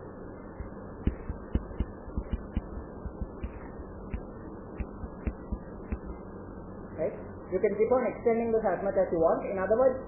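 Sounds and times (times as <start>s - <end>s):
low electrical hum: 0.0s - 10.0s
stylus tapping on pen tablet: 1.0s - 6.1s.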